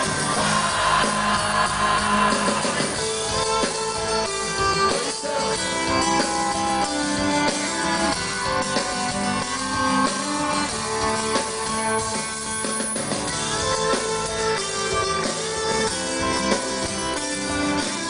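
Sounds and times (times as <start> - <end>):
acoustic guitars: 0.0 - 18.0
upright bass: 0.0 - 18.0.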